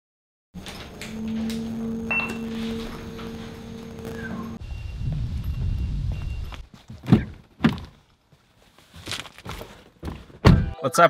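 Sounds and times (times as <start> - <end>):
lift car humming: 0.6 - 6.6
short high beep: 2.0 - 2.8.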